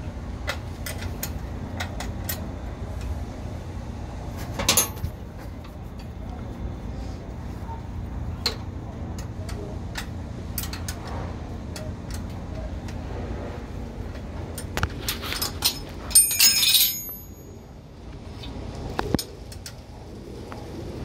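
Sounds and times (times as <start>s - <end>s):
spanner clicking on a nut: 0.4s - 3.1s, 9.2s - 11.1s, 11.7s - 13.0s
metal clattering clank: 4.6s - 5.1s, 15.4s - 17.5s.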